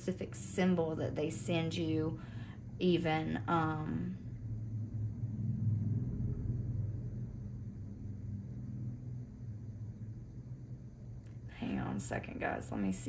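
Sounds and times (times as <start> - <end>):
low rumble with hum: 0.0 - 13.0.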